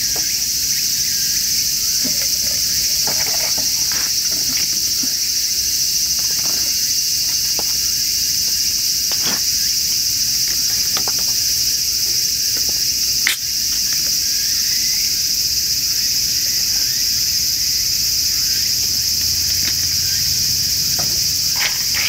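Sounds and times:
insects chorus: 0:00.0 - 0:22.0.

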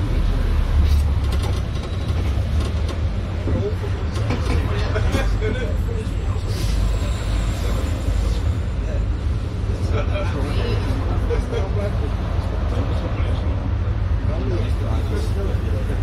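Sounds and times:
bus engine low rumble: 0:00.0 - 0:16.0
indistinct passenger chatter: 0:00.0 - 0:16.0
road traffic passing: 0:00.0 - 0:16.0.

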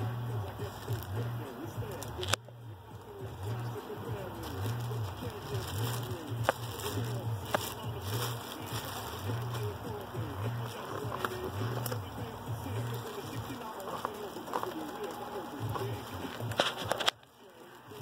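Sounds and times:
styrofoam and plastic wrap handled: 0:00.0 - 0:18.0.

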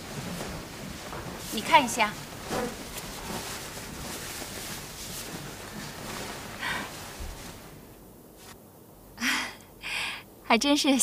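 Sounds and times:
cotton shirt rustling: 0:00.0 - 0:08.6.

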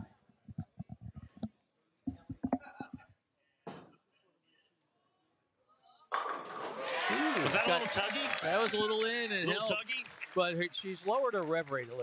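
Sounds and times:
bowling pins crashing: 0:06.1 - 0:07.0.

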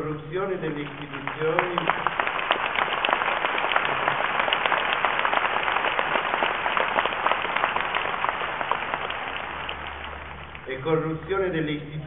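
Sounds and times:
crowd applauding: 0:00.6 - 0:10.8.

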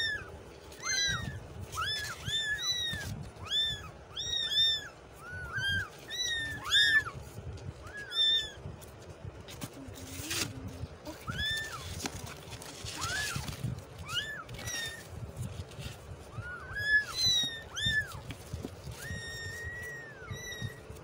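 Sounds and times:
kittens mewing: 0:00.0 - 0:21.0.

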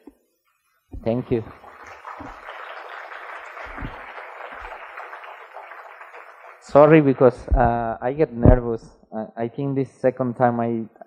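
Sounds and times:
audience applauding: 0:01.1 - 0:07.6.

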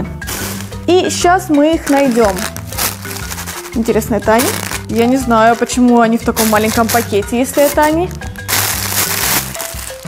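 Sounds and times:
background music: 0:00.0 - 0:10.0
plastic packaging rustling: 0:00.2 - 0:00.9, 0:01.8 - 0:10.0.

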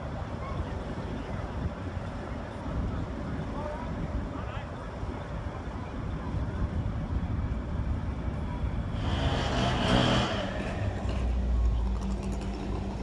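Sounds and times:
vehicle engine rumble: 0:00.0 - 0:13.0.

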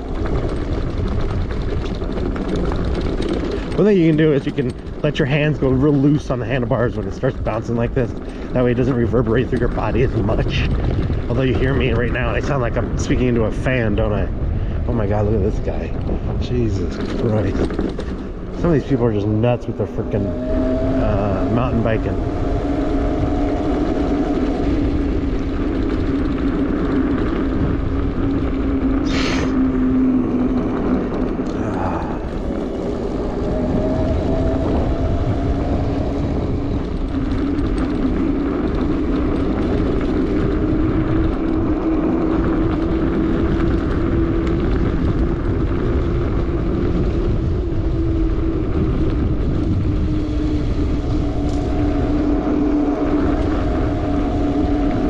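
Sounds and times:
tyre noise on dirt: 0:00.0 - 0:06.8, 0:21.5 - 0:54.8
electric bike motor whining: 0:00.0 - 0:55.0
wind rumble on microphone: 0:00.0 - 0:55.0.

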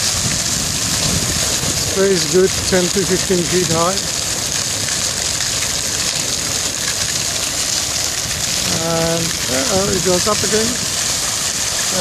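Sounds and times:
fountain spray splashing: 0:00.0 - 0:12.0
wind rumble on microphone: 0:00.0 - 0:12.0.

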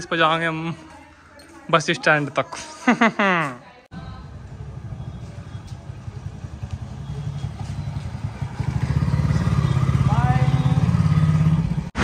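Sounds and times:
motorcycle engine running: 0:04.0 - 0:12.0.

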